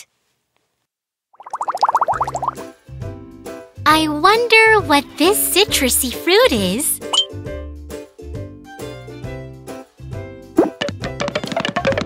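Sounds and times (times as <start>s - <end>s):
light cartoon background music: 2.0s - 12.0s.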